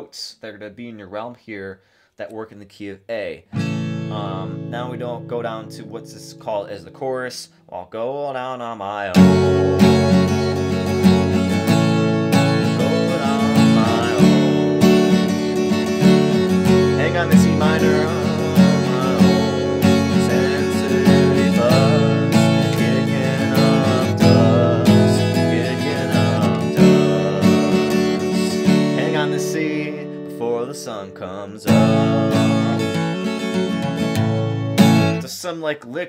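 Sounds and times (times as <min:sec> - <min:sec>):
acoustic guitar strumming: 0:03.5 - 0:07.1, 0:09.1 - 0:35.2.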